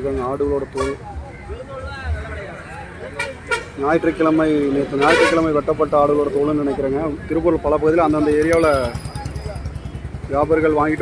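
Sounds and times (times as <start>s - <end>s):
man talking: 0.0s - 9.6s
vehicle engine idling: 5.8s - 11.0s.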